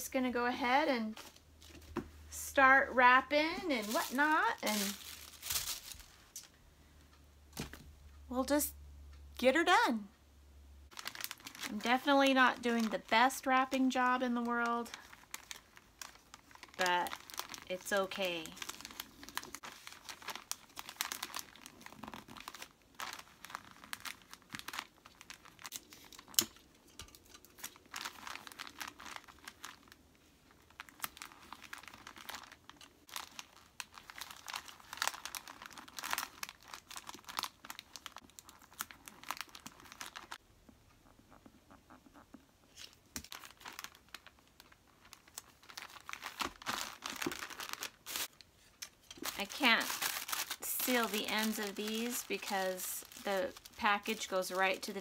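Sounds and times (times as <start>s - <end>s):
wrapping paper crinkling: 3.5s - 6.5s, 10.9s - 40.4s, 42.7s - 55.0s.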